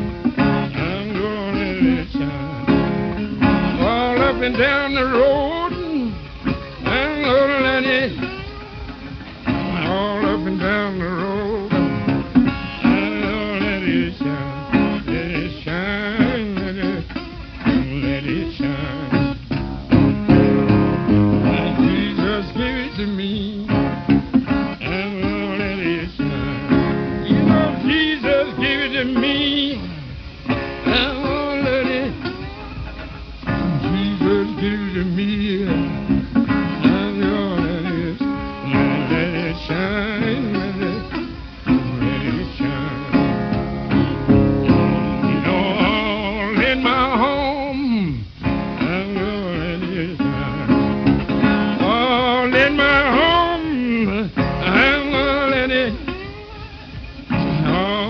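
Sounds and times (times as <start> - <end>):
man singing: 0.0 - 19.6, 21.4 - 56.7, 57.3 - 58.0
acoustic guitar playing: 0.0 - 58.0.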